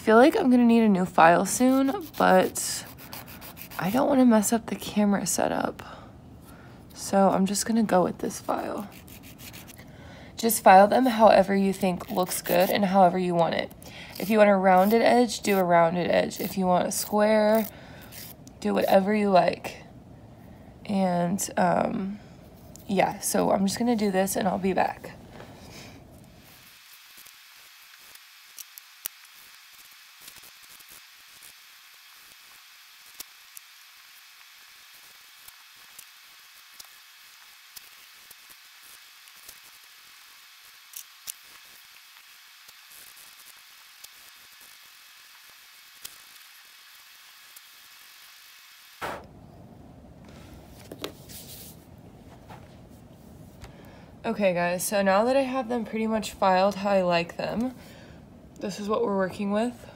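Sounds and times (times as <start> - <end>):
nail file scratching nails: 1.6 - 4.0, 8.5 - 9.8, 12.0 - 12.8, 14.1 - 15.7, 17.5 - 18.4.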